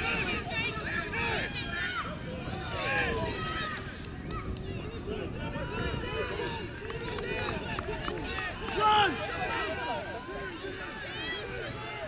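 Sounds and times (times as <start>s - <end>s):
people shouting across a field: 0.0s - 12.0s.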